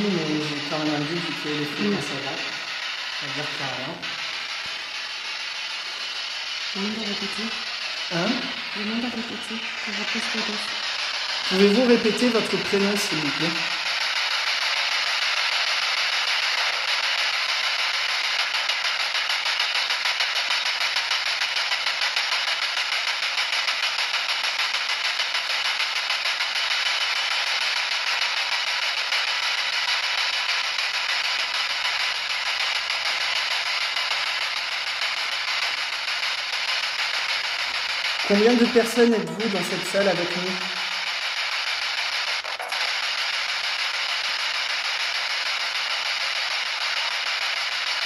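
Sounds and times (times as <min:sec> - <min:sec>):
radio static sweeping: 0:00.0 - 0:48.0.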